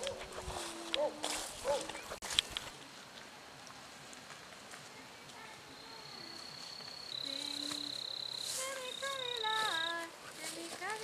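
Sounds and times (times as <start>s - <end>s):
high-pitched insect trill: 5.8s - 10.1s.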